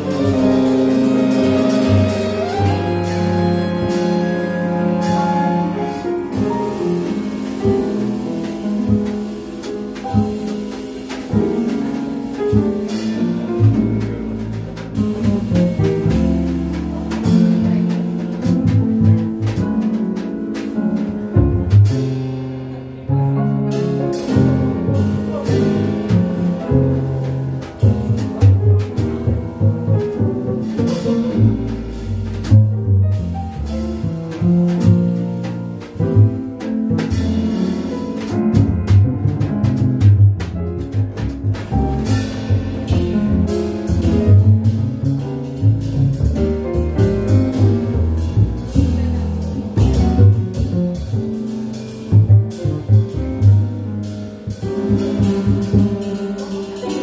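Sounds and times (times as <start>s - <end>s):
acoustic piano: 0.0s - 57.0s
drum kit cymbals and drums: 0.0s - 57.0s
plucked double bass: 0.0s - 57.0s.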